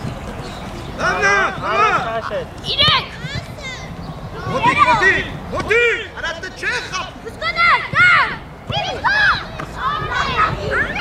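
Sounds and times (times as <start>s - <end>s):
children shouting: 1.0s - 6.0s, 7.2s - 11.0s.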